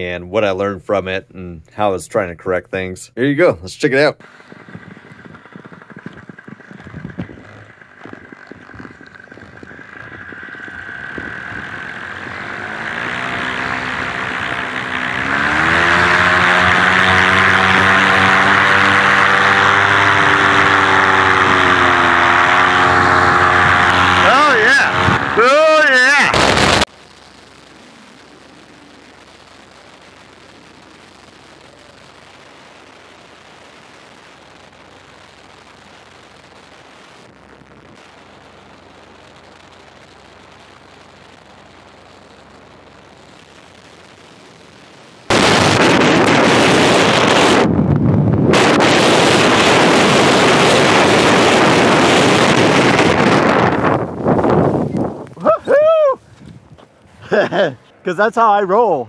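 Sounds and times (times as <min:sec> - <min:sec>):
paramotor engine revving: 0:04.2 - 0:26.9, 0:45.3 - 0:54.6.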